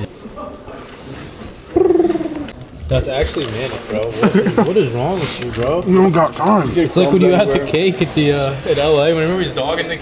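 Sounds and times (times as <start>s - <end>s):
quiet shop background: 0.0s - 10.0s
man making silly animal noise: 1.7s - 2.6s.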